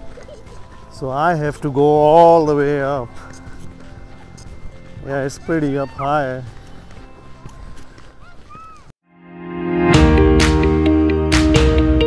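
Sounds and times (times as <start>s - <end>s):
footsteps crunching in snow: 0.0s - 8.9s
distant children shouting: 4.1s - 8.9s.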